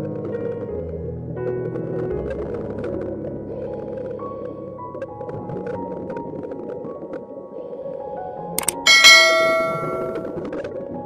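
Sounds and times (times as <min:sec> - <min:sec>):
bright bell ding: 0:08.6 - 0:10.3.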